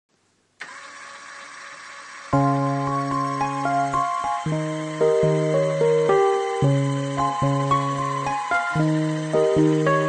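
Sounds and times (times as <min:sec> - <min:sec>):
electric motor running: 0:00.6 - 0:10.0.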